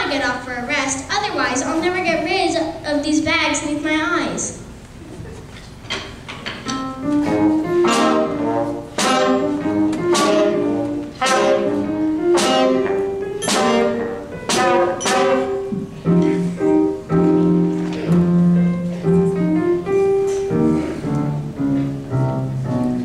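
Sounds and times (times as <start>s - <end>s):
school band playing: 6.7s - 23.0s
saxophone and trombone notes: 7.0s - 21.6s.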